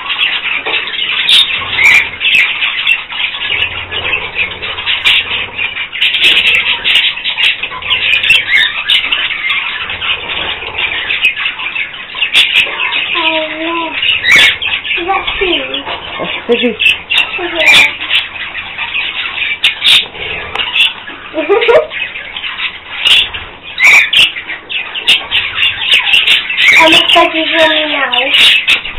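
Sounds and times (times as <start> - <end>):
budgerigars chattering and chirping: 0.0 - 28.9.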